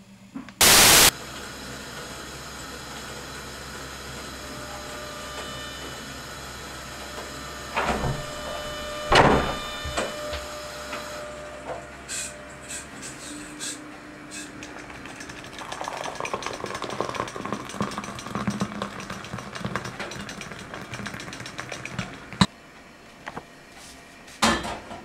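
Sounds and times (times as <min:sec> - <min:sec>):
electrical hum: 0:00.0 - 0:24.4
burst of static noise: 0:00.6 - 0:01.1.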